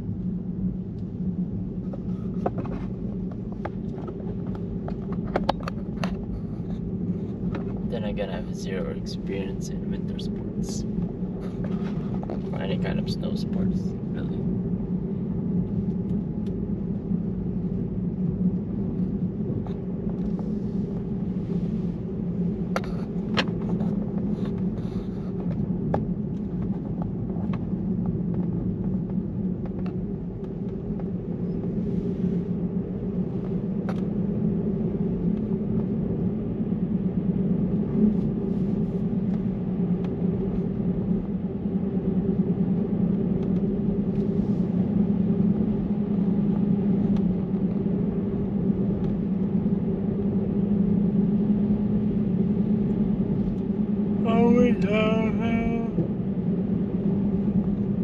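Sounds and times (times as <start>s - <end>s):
car tyres rolling on asphalt: 0.0s - 9.3s, 10.0s - 54.2s
person speaking: 7.9s - 10.8s, 12.6s - 14.4s, 54.2s - 56.0s.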